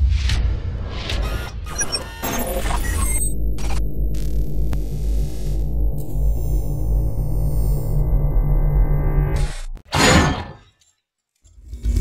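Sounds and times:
short glitchy beeps: 1.2s - 3.8s
deep bass drone: 3.0s - 9.8s.

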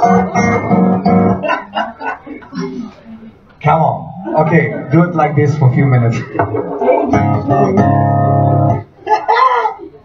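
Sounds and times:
electronic organ chords: 6.3s - 8.9s.

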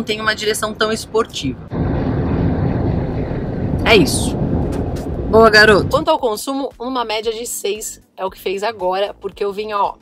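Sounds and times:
road noise inside car: 0.0s - 6.1s
wind noise: 0.0s - 6.2s.

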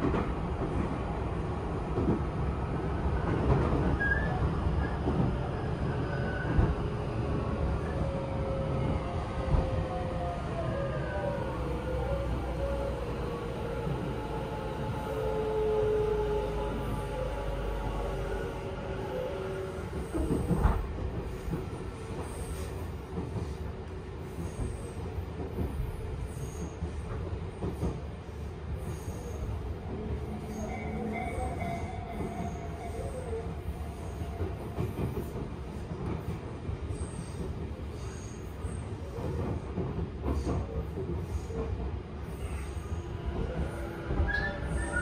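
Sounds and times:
train wheels rumbling on rails: 0.0s - 45.0s
train running gear rumble: 19.4s - 30.3s.

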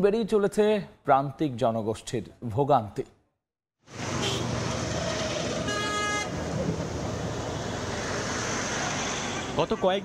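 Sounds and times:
outdoor background noise: 3.8s - 10.0s
vehicle horn: 4.2s - 4.5s, 5.6s - 6.4s.

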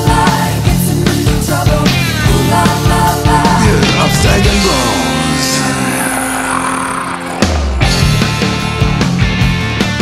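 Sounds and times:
blues-rock band playing: 0.3s - 10.0s.

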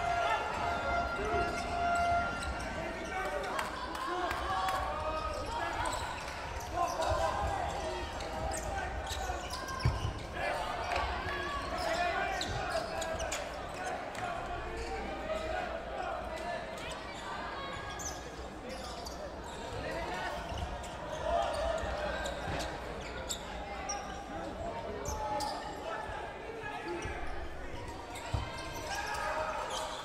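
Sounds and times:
players calling and chattering: 0.0s - 30.0s.

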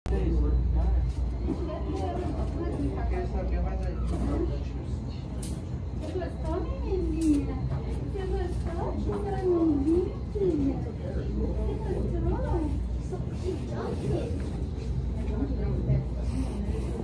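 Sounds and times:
indistinct talking: 0.2s - 17.0s.

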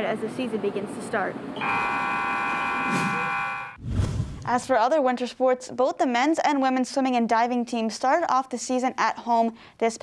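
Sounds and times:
scoreboard buzzer blaring: 1.6s - 3.8s.

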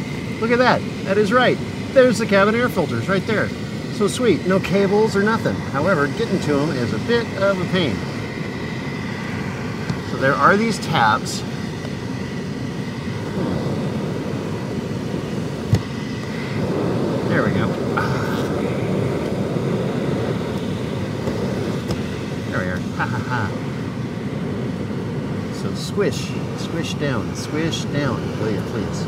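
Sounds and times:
low whooshing hum: 0.0s - 29.0s.

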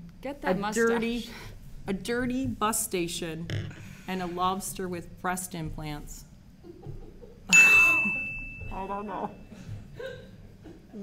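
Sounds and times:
bell-like ding: 7.5s - 9.5s.

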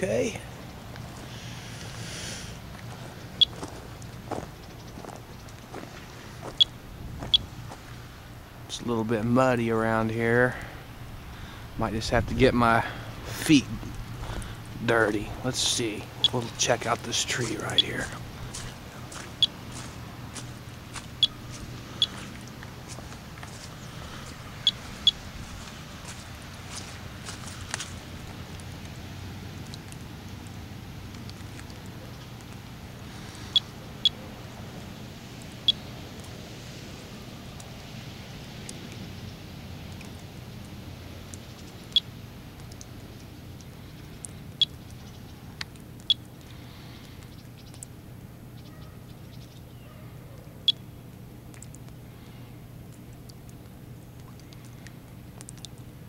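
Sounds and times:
steady low background noise: 0.0s - 56.0s.

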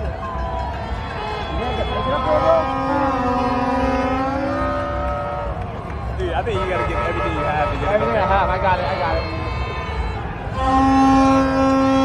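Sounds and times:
crowd cheering and yelling: 0.0s - 12.0s.

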